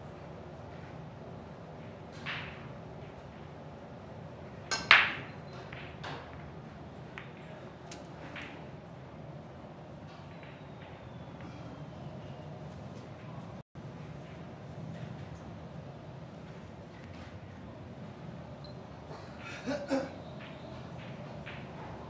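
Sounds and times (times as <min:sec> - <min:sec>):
billiard balls cracking: 0:04.7 - 0:08.7.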